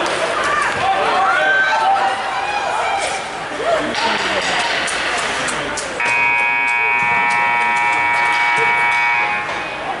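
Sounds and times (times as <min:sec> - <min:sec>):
scoreboard horn buzzing: 0:06.0 - 0:09.6.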